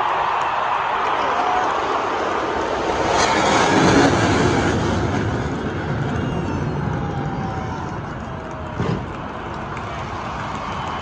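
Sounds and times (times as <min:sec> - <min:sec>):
jet aircraft roar: 0:00.2 - 0:11.0.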